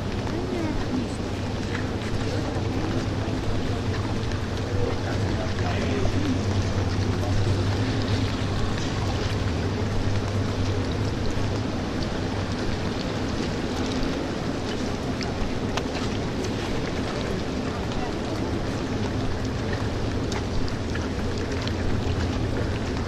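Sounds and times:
steady low hum: 0.0s - 23.0s
water noise: 0.0s - 23.0s.

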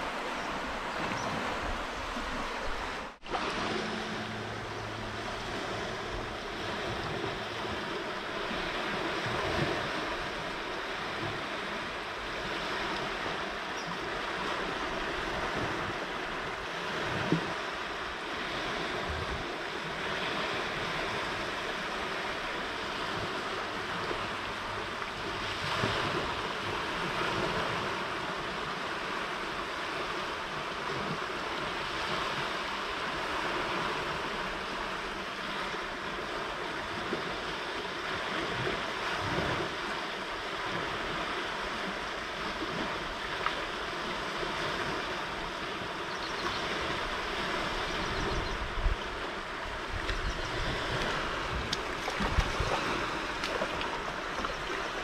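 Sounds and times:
water rushing: 0.0s - 55.0s.

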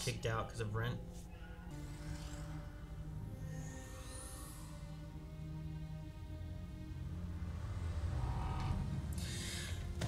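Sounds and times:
low music drone: 0.0s - 10.0s
breathy exhale: 9.1s - 9.9s.

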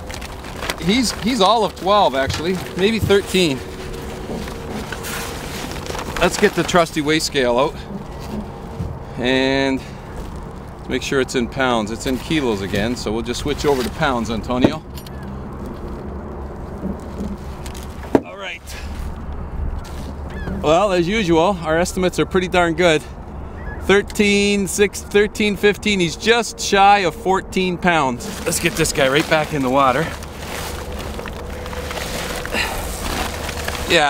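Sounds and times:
plastic bag rustling: 0.0s - 9.1s, 9.8s - 10.9s, 12.0s - 14.5s, 15.5s - 20.6s, 28.2s - 34.0s
low wind rumble on microphone: 0.0s - 24.6s.

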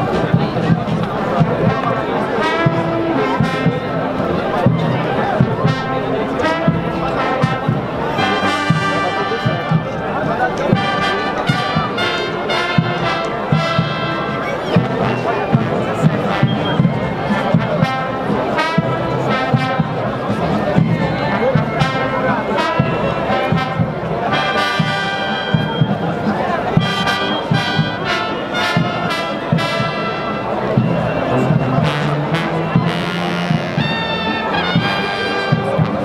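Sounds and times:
brass band music: 0.0s - 36.0s
murmur of crowd talking: 0.0s - 36.0s.

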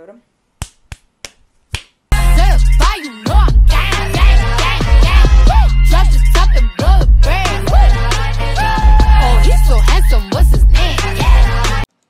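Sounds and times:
fist slapping open palm: 0.6s - 2.0s.

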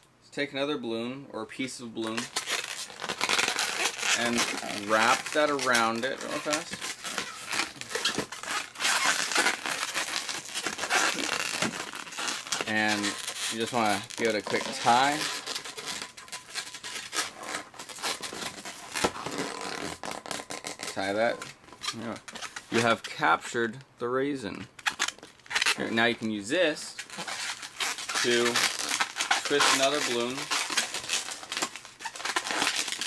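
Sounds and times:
rubbery balloon scrapes: 2.1s - 22.8s, 27.0s - 33.0s.

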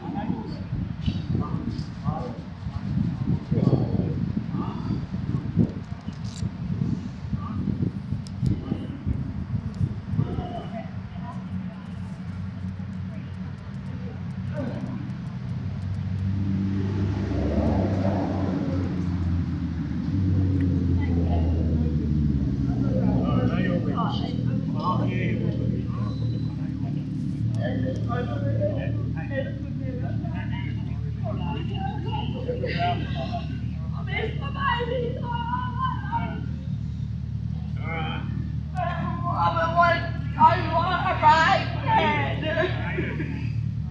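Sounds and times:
people talking: 0.0s - 6.1s, 7.3s - 15.2s, 20.8s - 36.9s, 37.5s - 43.9s
road traffic engine hum: 0.0s - 43.9s.

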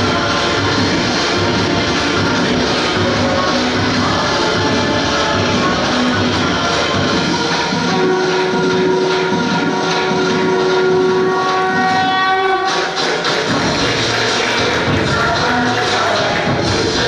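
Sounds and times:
music over loudspeaker: 0.0s - 17.0s
busy drum rhythm: 12.9s - 17.0s.

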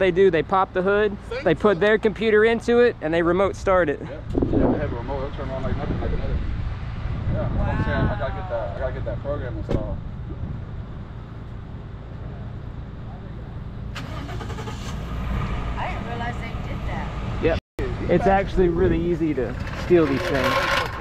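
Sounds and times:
vehicle engine idling: 8.3s - 14.9s.

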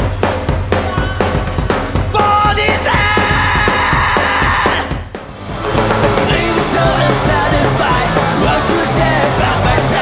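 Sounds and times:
drum hits: 0.0s - 10.0s
live rock band playing: 0.0s - 10.0s.

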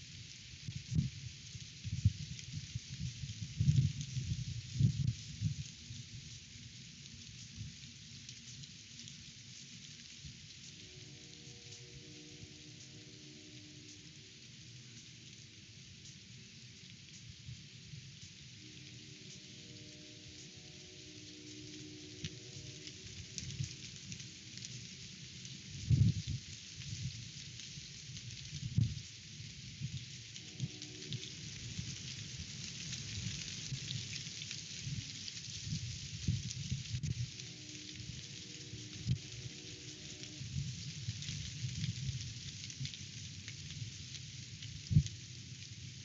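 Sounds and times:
wind buffeting microphone thumps: 1.8s - 5.7s, 25.7s - 27.2s
strong wind gusting: 25.6s - 27.2s.

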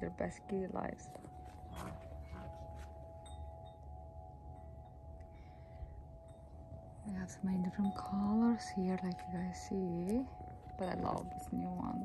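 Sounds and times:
faint steady hum: 0.0s - 12.0s
low steady rumble: 0.0s - 12.0s.

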